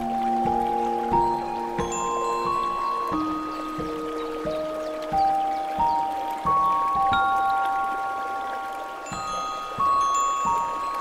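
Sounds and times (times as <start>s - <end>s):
faint water wash: 0.0s - 11.0s.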